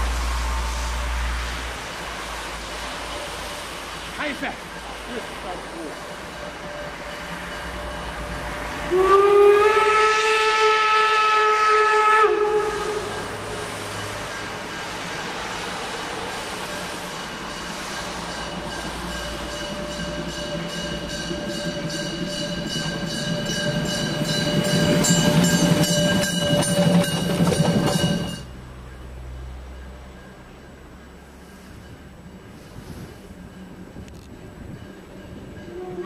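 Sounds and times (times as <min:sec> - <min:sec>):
steam locomotive whistle blast: 0:00.0 - 0:01.8, 0:05.9 - 0:14.4, 0:35.7 - 0:36.0
steam train exhaust beats: 0:00.0 - 0:36.0.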